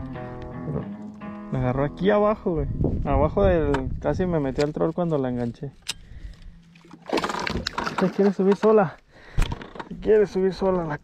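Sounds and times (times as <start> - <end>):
fish thrashing and splashing: 6.7 - 8.6.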